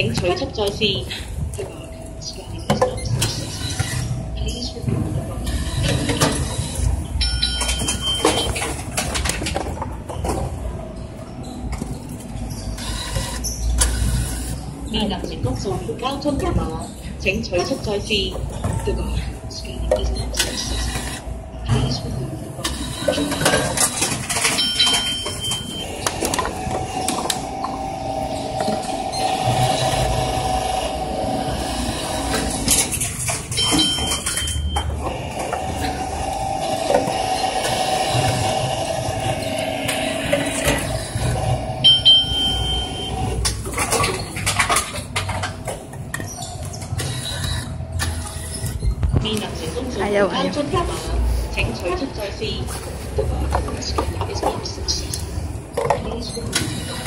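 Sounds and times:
vending machine motor humming: 0.0 - 57.0
short high beeps: 33.6 - 35.0, 41.8 - 43.3.

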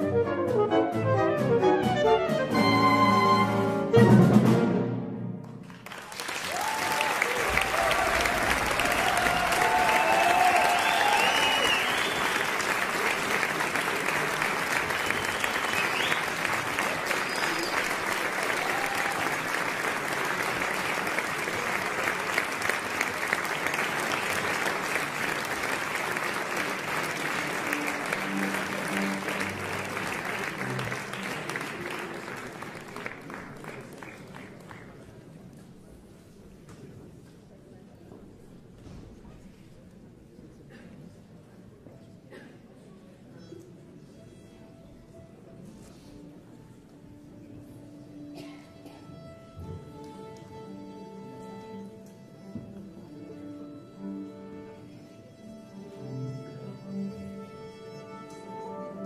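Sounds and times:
audience applause: 5.5 - 35.4
audience cheering: 5.9 - 20.0.

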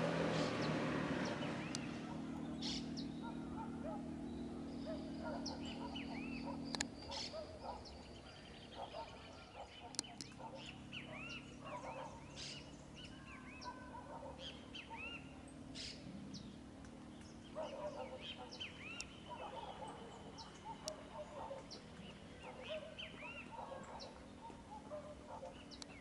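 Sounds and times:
birds chirping: 0.0 - 26.0
lower bird calls: 0.3 - 26.0.

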